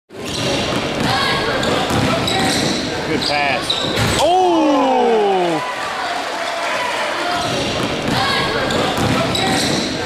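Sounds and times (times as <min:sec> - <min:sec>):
crowd and player voices: 0:00.1 - 0:10.0.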